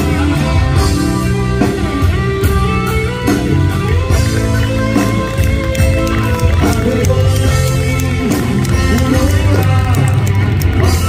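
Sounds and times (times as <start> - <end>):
electric guitar: 0.0 - 11.0
live rock band playing: 0.0 - 11.0.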